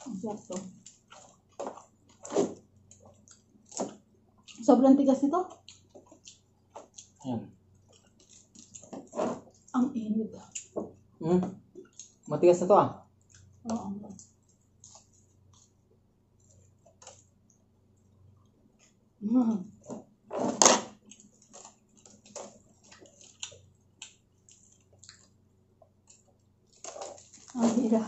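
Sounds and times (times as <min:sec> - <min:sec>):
chewing crunchy food: 0:00.0 - 0:04.7, 0:05.4 - 0:09.8, 0:10.4 - 0:11.1, 0:11.7 - 0:12.3, 0:13.1 - 0:19.0, 0:19.9 - 0:27.7.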